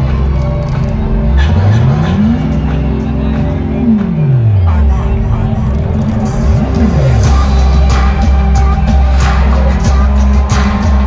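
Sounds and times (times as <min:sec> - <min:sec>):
live music over sound system: 0:00.0 - 0:11.0.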